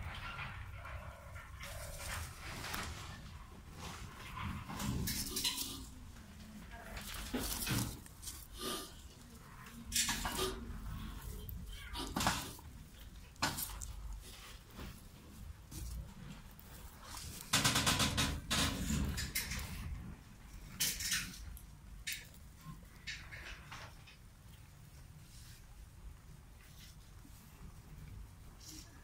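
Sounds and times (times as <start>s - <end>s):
plastic boxes clicking and knocking: 17.3s - 19.9s.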